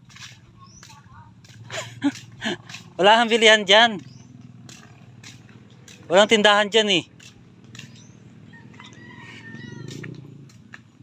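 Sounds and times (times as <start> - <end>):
soft footsteps on dirt path: 0.0 - 11.0.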